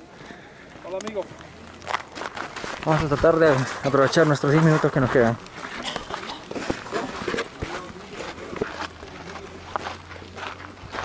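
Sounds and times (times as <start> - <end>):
faint voices: 0.0 - 11.0
crunching footsteps on dirt path: 0.8 - 11.0.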